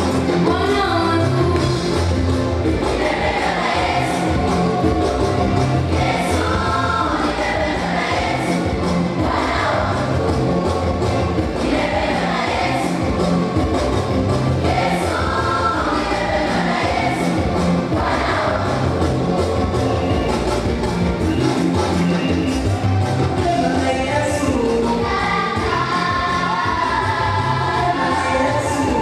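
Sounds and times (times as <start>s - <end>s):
band beat with bass: 1.4s - 26.7s
gospel choir singing: 1.6s - 20.6s, 23.2s - 29.0s.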